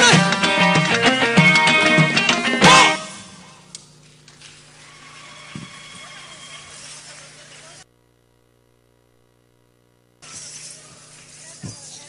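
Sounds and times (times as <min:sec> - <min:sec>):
faint electrical buzz: 0:00.2 - 0:12.0.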